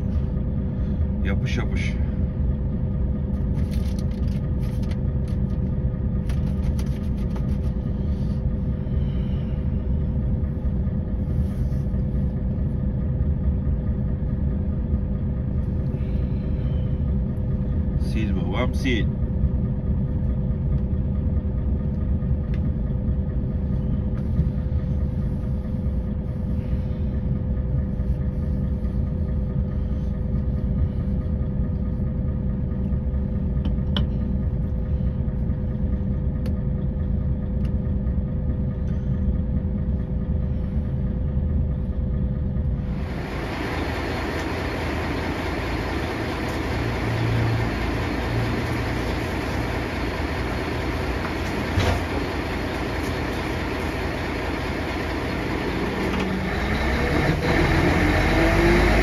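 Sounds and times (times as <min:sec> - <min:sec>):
diesel engine idling: 0:00.0 - 0:59.0
steady hum: 0:00.0 - 0:59.0.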